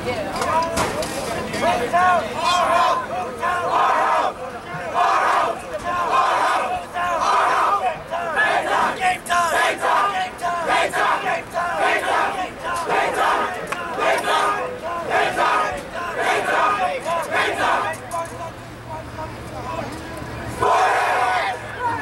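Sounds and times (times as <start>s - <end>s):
players shouting and chanting: 0.1s - 22.0s.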